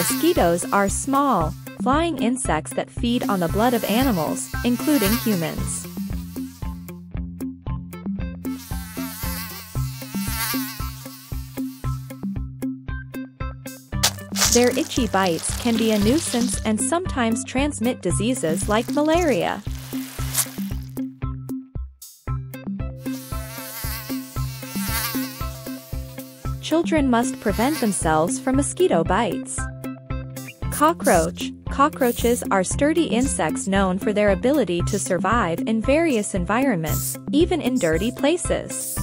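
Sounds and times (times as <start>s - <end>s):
mosquito buzzing: 0.0s - 1.8s, 3.2s - 6.9s, 8.4s - 12.3s, 14.0s - 16.6s, 18.4s - 21.0s, 23.0s - 26.6s, 27.2s - 28.4s
background music with bass line: 13.7s - 17.0s
background music with steady beat: 18.7s - 23.1s.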